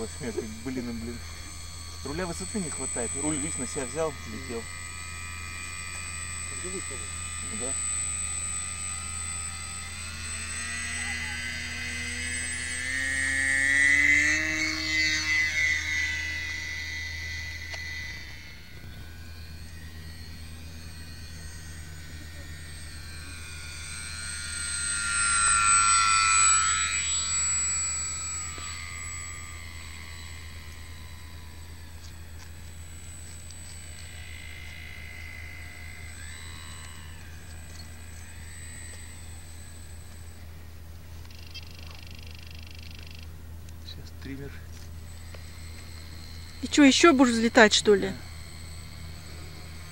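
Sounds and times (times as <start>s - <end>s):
model plane motor whine: 0.0s - 49.9s.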